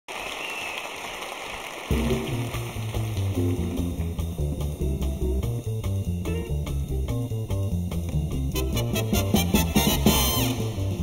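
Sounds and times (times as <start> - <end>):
audience applause: 0.1 - 3.8
stepping bass line: 1.9 - 11.0
band with orchestra playing: 8.5 - 11.0.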